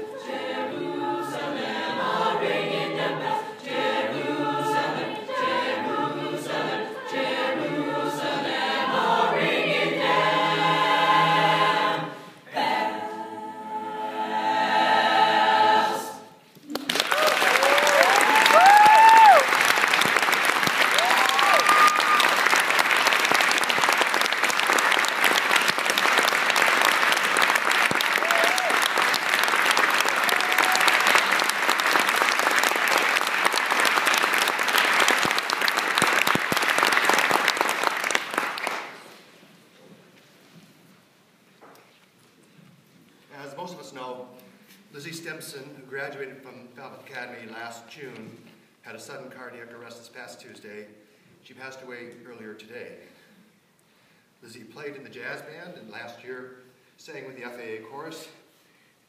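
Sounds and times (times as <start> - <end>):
choir singing: 0.0 - 16.5
audience applauding: 16.6 - 39.1
whoops and cheers: 17.0 - 19.6, 20.9 - 22.5, 28.2 - 28.9, 30.2 - 31.2.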